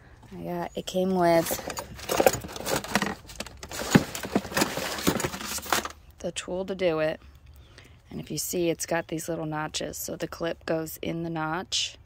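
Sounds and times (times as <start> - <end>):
tools clinking in plastic bucket: 1.2 - 5.9
plastic bag rustling: 1.2 - 6.0.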